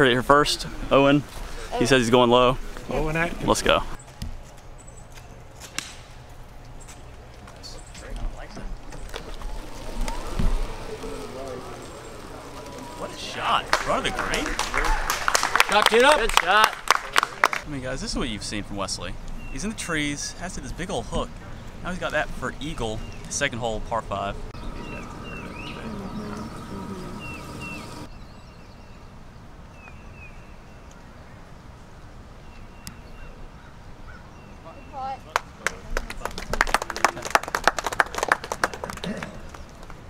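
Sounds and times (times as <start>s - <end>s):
outdoor background noise: 0.0s - 40.0s
faint voices: 7.4s - 16.1s, 23.7s - 28.1s.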